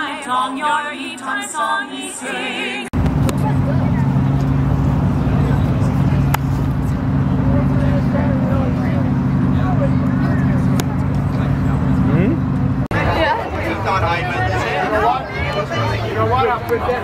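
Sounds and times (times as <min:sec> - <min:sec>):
faint voices: 0:02.5 - 0:17.0
car engine idling: 0:03.0 - 0:17.0.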